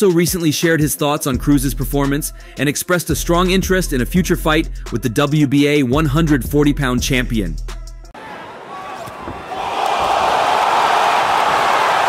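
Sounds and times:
crowd cheering: 8.2s - 12.0s.

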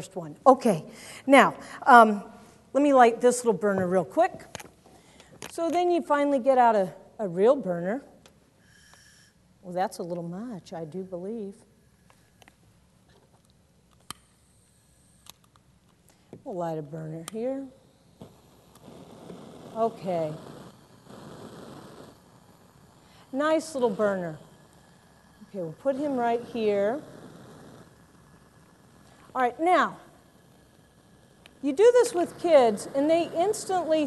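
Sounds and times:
bunsen burner hissing: 8.5s - 13.1s, 13.7s - 34.0s
lighter click: 13.9s - 14.4s.

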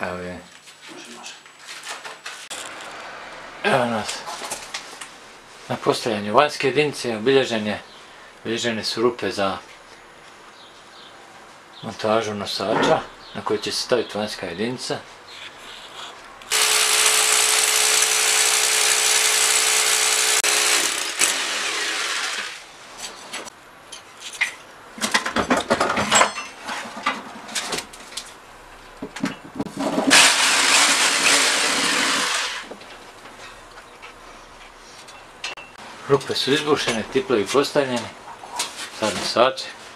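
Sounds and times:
electric drill boring into wall: 16.5s - 22.7s, 30.1s - 32.7s.

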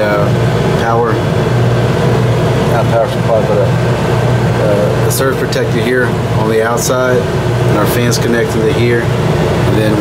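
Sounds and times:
ventilation fans humming: 0.0s - 10.0s.

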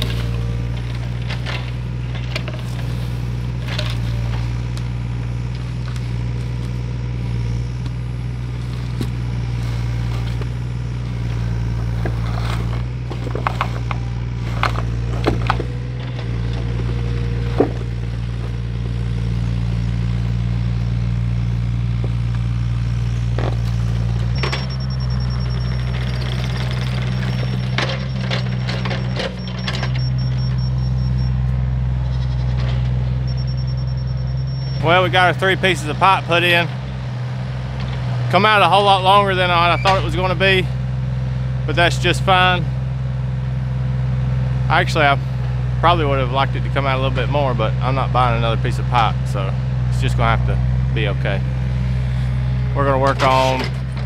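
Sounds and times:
knocks and scrapes: 0.0s - 4.8s, 8.6s - 19.0s
tractor engine running: 0.0s - 54.0s.

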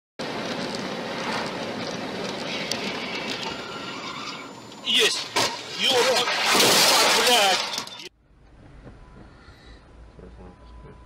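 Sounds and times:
road tyre and wind noise in car: 0.2s - 4.8s, 8.2s - 11.0s.

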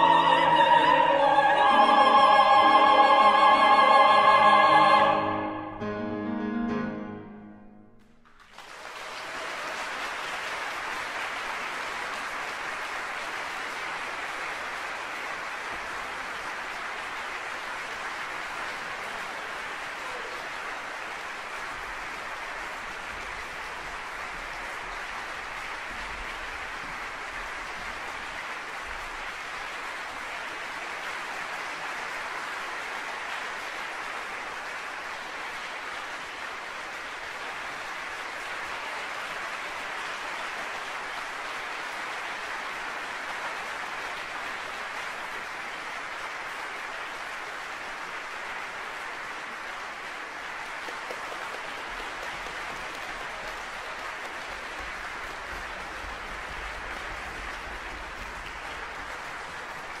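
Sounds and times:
audience applauding: 0.0s - 5.6s, 8.2s - 60.0s.

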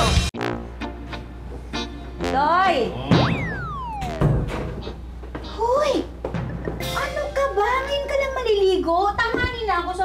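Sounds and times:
cartoon warbling tone: 2.9s - 4.9s
falling whistle glide: 3.4s - 4.3s.

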